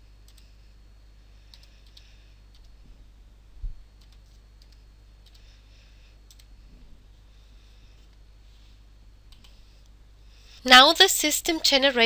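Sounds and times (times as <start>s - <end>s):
steady low hum: 0.0s - 12.0s
computer key and mouse clicks: 1.5s - 2.8s, 4.0s - 5.5s, 6.3s - 6.5s, 9.3s - 9.6s.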